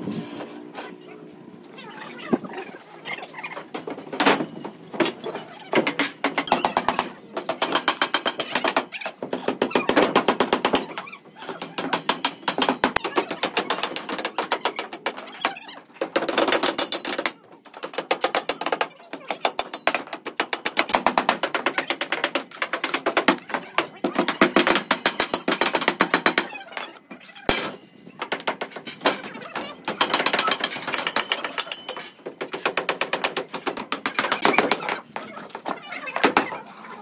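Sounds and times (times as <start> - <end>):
hammering on boards and concrete: 3.6 - 36.7.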